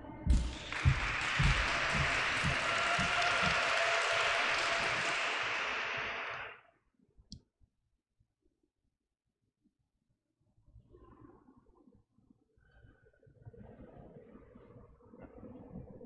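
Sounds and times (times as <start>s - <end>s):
low thuds: 0.3s - 3.6s
applause: 0.3s - 6.6s.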